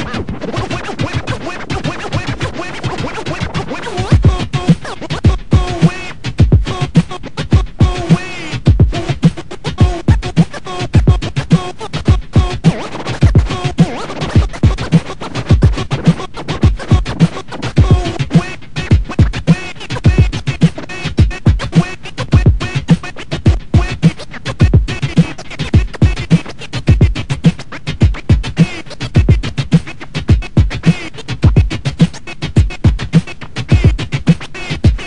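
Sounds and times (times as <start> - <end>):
record scratching: 0.0 - 35.0.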